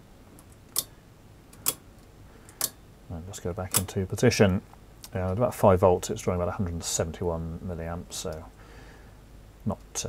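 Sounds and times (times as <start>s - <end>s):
sharp clicks: 0.4s - 1.8s.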